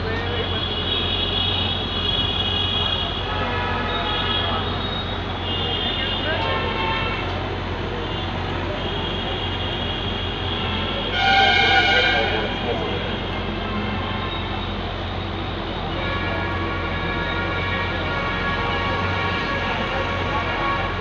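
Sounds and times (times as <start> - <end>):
road traffic rumble: 0.0 - 21.0
vehicle horn honking: 0.4 - 7.4, 8.0 - 21.0.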